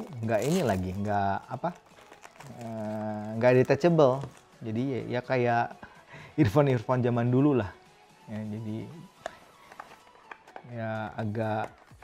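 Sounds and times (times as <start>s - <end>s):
cardboard box being opened: 1.8s - 3.6s.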